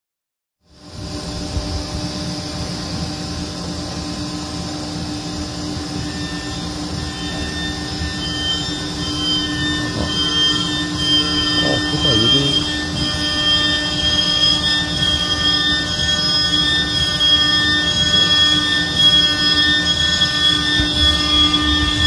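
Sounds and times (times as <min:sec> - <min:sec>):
milling machine hum and whine: 0:00.7 - 0:22.0
higher tone: 0:06.0 - 0:22.0.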